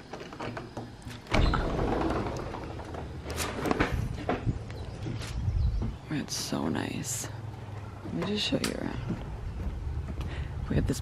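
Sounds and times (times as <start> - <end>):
sliding glass door rumbling: 0.0 - 5.8.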